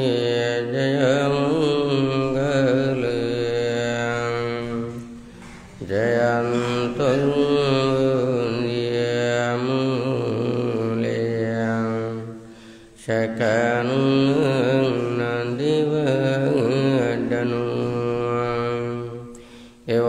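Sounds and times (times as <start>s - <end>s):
person chanting through a microphone: 0.0s - 20.0s.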